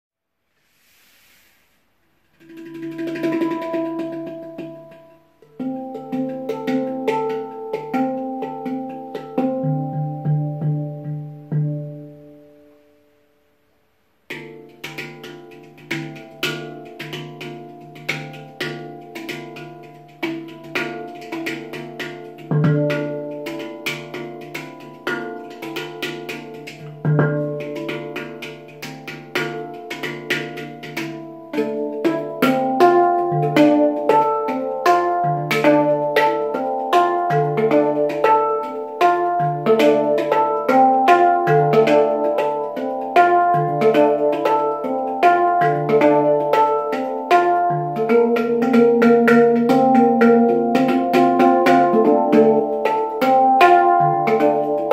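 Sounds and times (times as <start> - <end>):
handpan notes ringing: 2.4 - 12.8, 14.2 - 54.9.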